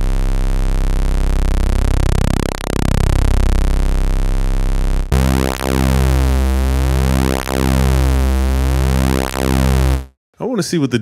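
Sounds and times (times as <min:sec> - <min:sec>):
synthesizer bass note: 0:00.0 - 0:10.2.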